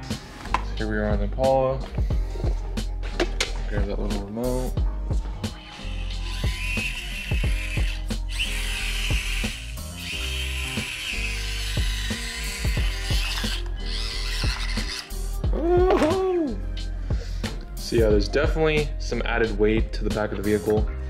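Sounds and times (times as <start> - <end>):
music with deep sliding bass: 0.0 - 21.0
small electric motor whine: 5.5 - 15.2.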